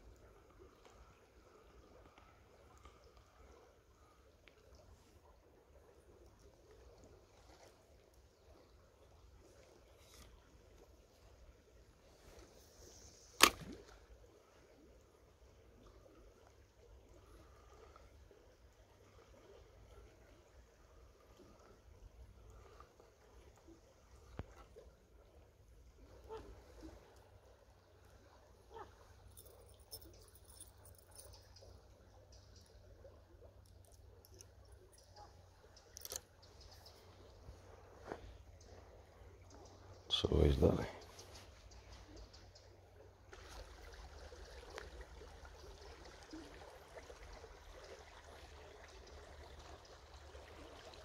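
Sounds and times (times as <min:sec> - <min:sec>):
faint river flow: 0:00.0 - 0:51.0
fishing rod cast swish: 0:13.2 - 0:14.0
reel bail snapping shut: 0:13.4 - 0:13.8, 0:36.0 - 0:36.3.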